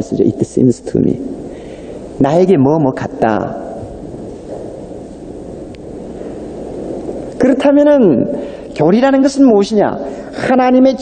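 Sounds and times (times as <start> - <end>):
tape hiss: 0.0 - 11.0.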